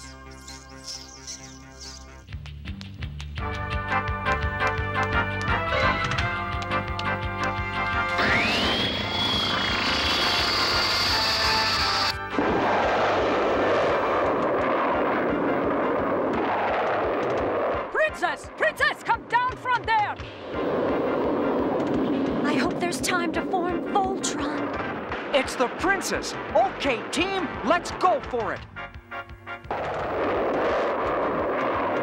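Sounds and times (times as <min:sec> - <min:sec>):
jet-like rumble of flying machine: 0:07.9 - 0:17.9, 0:20.2 - 0:27.6
rising electronic whine: 0:08.1 - 0:12.2.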